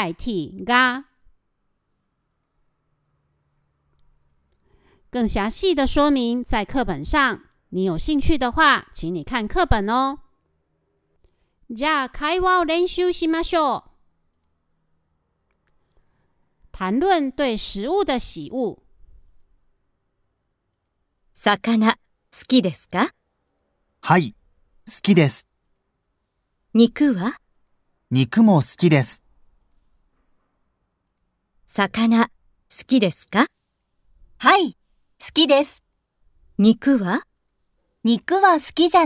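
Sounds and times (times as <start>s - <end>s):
person speaking: 0.0s - 1.2s, 11.7s - 14.0s, 16.7s - 18.9s, 21.4s - 23.2s, 24.0s - 25.6s, 26.7s - 27.4s, 28.1s - 29.3s, 31.7s - 33.6s, 34.4s - 35.9s, 36.6s - 37.3s, 38.0s - 39.0s
faint clicks: 2.2s - 2.6s, 14.3s - 14.6s, 20.6s - 21.0s, 25.6s - 25.9s, 29.6s - 29.9s, 31.0s - 31.4s.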